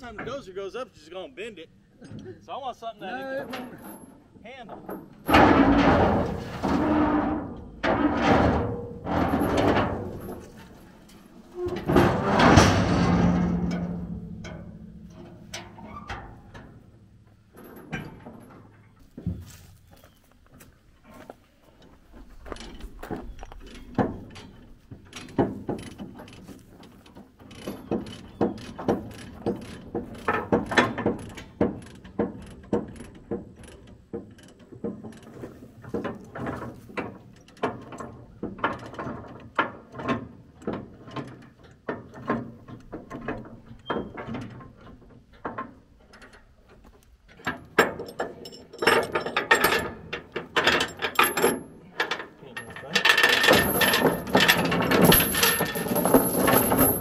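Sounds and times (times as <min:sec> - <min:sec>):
chains clanking against steel: 0:03.4 - 0:16.8, 0:47.4 - 0:57.0.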